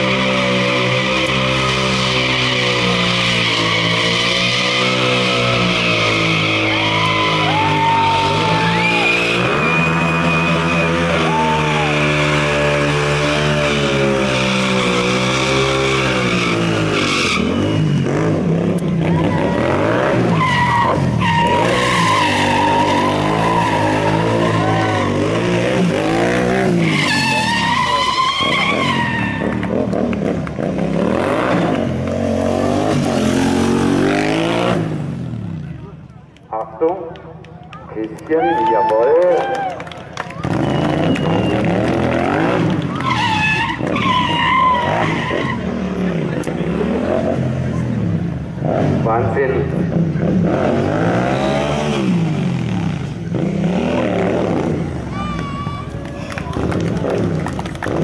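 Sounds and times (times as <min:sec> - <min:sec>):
tyre screeching on asphalt: 0:00.0 - 0:35.6, 0:40.4 - 0:48.2
motorcycle engine revving hard: 0:00.0 - 0:35.7, 0:40.4 - 0:55.2.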